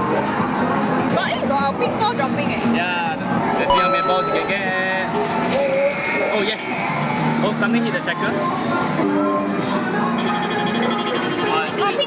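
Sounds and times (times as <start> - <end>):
bell-like arcade chime: 3.7 - 5.1
arcade machine jingles and music: 3.7 - 6.5.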